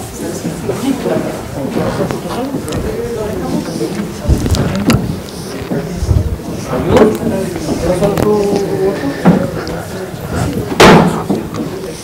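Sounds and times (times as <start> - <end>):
faint murmur of voices: 0.0 - 12.0.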